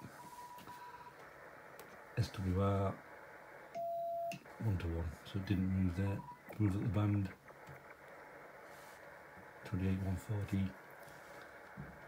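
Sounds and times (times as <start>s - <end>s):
faint radio speaker hiss: 0.0s - 12.0s.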